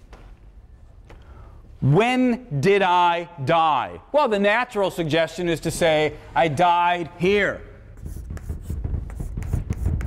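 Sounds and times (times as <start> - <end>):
chalk on blackboard: 7.9 - 10.0.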